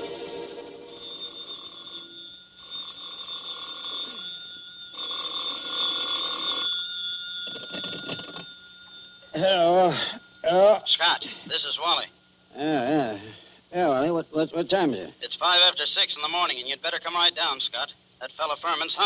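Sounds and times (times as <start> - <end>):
telephone bell ringing: 0.0 - 10.1.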